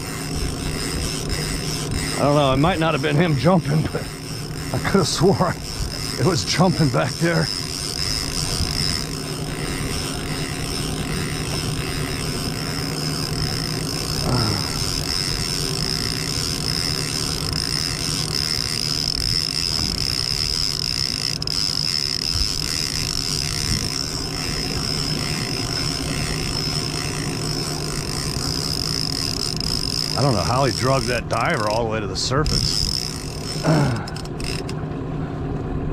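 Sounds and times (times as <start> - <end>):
outboard motor droning: 0.0 - 35.9.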